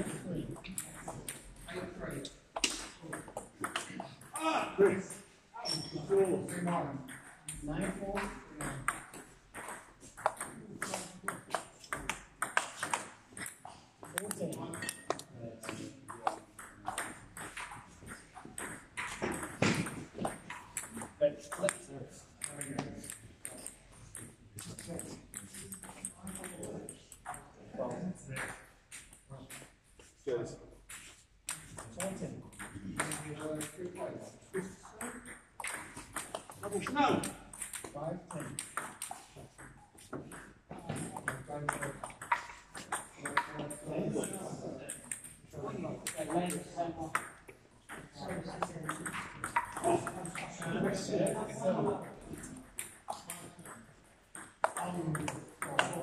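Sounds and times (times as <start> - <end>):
table tennis ball clicking: 46.0 - 50.4, 52.3 - 56.0.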